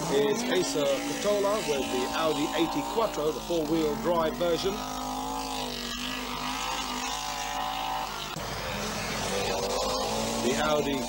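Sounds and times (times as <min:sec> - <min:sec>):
rally car engine at high revs: 0:00.0 - 0:11.0.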